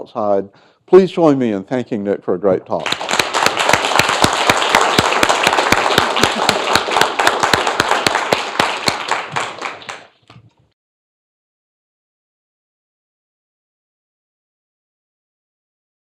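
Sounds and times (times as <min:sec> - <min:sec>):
audience applauding: 0:02.8 - 0:10.2.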